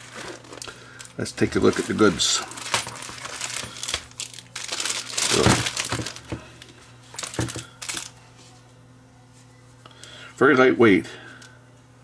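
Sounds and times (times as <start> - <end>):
plastic bag crinkling: 0.0 - 8.2.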